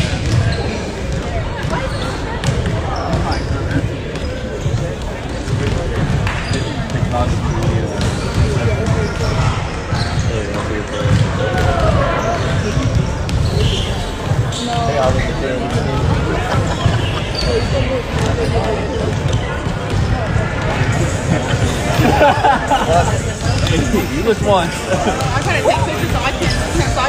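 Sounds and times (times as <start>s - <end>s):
indistinct spectator chatter: 0.0s - 27.0s
basketballs bouncing on hardwood floor: 0.1s - 21.6s.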